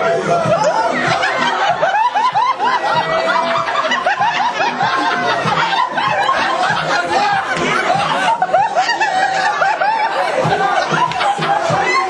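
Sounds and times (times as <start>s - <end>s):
music playing: 0.0s - 12.0s
people laughing and giggling: 0.0s - 12.0s.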